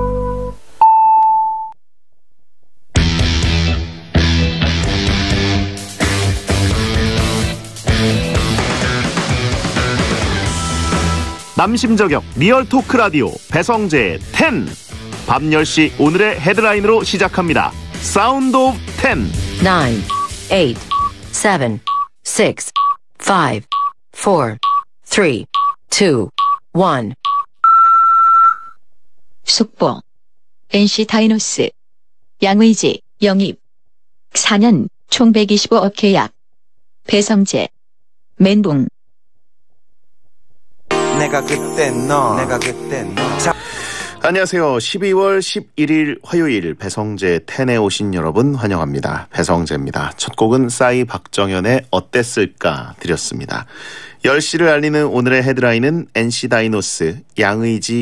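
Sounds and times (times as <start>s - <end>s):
long high beep: 0.0s - 1.8s
rock music jingle: 3.0s - 12.7s, 40.9s - 44.2s
radio time signal beeps: 20.0s - 21.2s.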